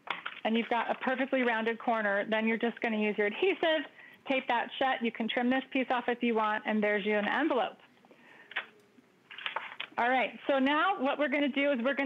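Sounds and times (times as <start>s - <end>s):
paper card rustling: 0.0s - 1.7s, 8.5s - 10.0s.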